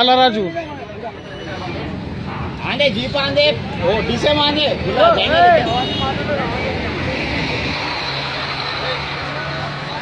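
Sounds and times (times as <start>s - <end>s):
street traffic noise: 0.0s - 10.0s
bus engine droning: 0.9s - 10.0s.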